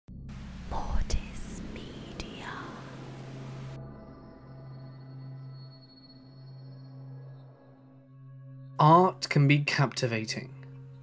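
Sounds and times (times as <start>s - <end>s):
low steady drone: 0.1s - 8.7s
static-like hiss: 0.3s - 3.8s
whispered voice: 0.7s - 3.0s.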